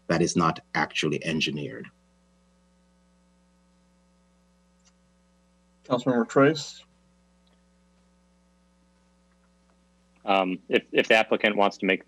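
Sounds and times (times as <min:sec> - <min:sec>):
faint mains hum: 0:00.0 - 0:12.0
man speaking: 0:00.1 - 0:01.9, 0:05.9 - 0:06.8, 0:10.3 - 0:12.0.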